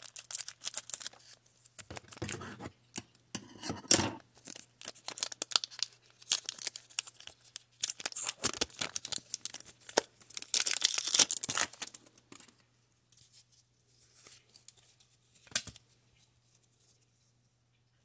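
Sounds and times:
foil wrapper tearing and crinkling: 0.0 - 2.3, 4.4 - 12.1.

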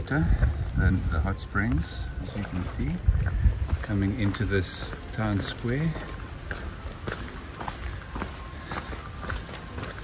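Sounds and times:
footsteps on stone paving: 0.0 - 10.0.

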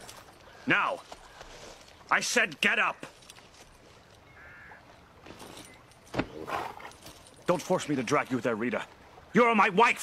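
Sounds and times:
caw-like bird call: 4.3 - 4.9.

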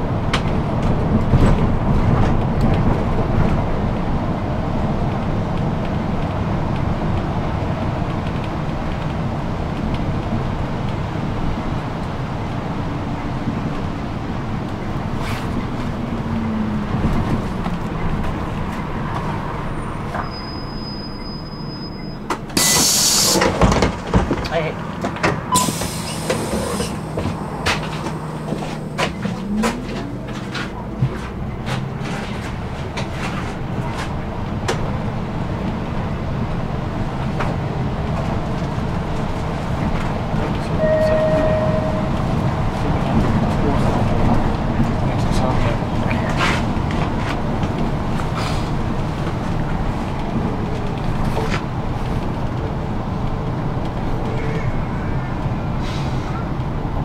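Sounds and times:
bus diesel engine: 0.0 - 57.0
tyre noise: 15.1 - 34.9
thin high whistle: 20.2 - 23.3, 40.8 - 42.2
brief loud hiss: 22.6 - 23.4.

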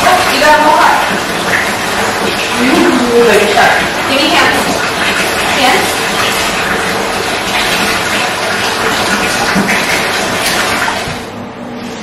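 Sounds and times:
water running in bathtub: 0.0 - 12.0.

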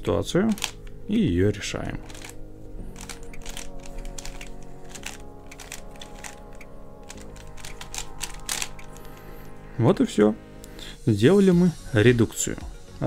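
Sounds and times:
background music: 0.0 - 13.0
plastic puzzle clicking: 0.5 - 0.9, 2.0 - 2.4, 3.0 - 9.2.

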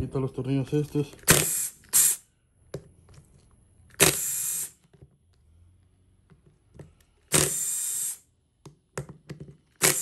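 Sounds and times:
cordless drill running: 4.0 - 4.8, 7.3 - 8.3, 9.8 - 10.0.

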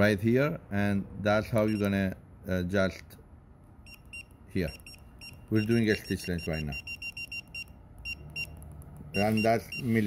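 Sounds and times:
short high beeps: 3.8 - 10.0.

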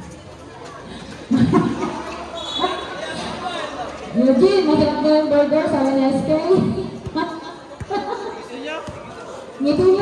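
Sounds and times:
voices echoing: 0.0 - 10.0.

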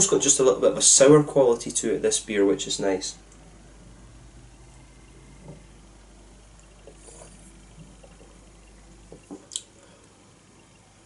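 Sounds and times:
sipping and swallowing beer: 6.6 - 10.1.

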